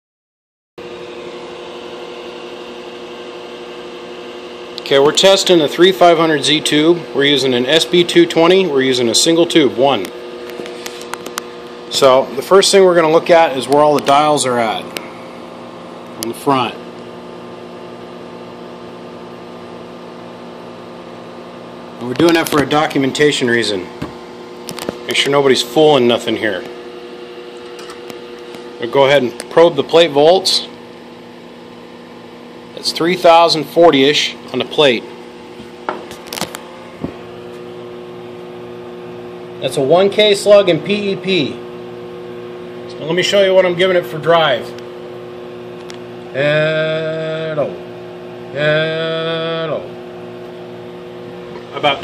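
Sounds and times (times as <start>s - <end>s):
cooling fan humming: 0.8s - 52.0s.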